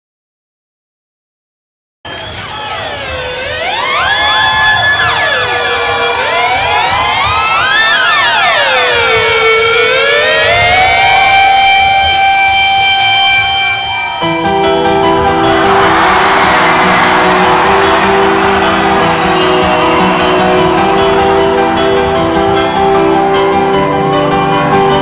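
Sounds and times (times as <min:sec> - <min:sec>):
electronic siren-like drone: 0:02.6 - 0:25.0.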